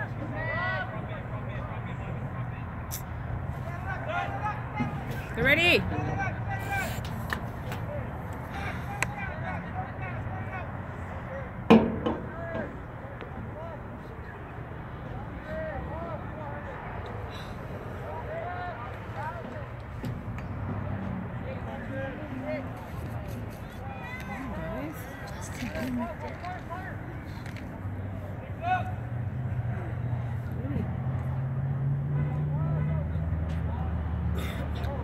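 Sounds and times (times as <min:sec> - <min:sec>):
distant players shouting: 0:00.0 - 0:22.8, 0:23.6 - 0:35.0.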